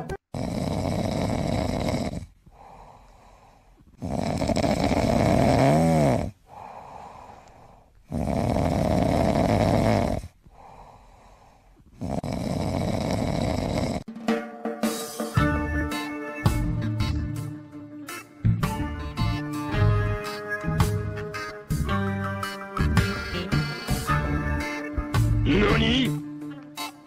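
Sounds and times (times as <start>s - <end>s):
kitten snoring: 0.3s - 6.7s, 8.0s - 10.7s, 11.4s - 14.1s
soft breaths: 1.6s - 14.1s
guitar music: 14.1s - 27.0s.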